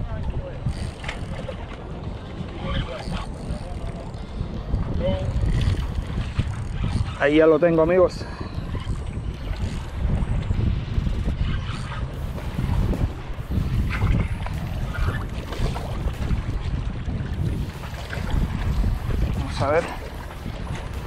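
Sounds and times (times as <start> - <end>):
wind noise on microphone: 0.0 - 21.0.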